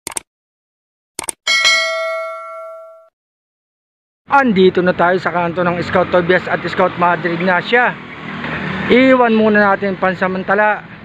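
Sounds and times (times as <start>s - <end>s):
notification bell chime: 1.5s - 3.1s.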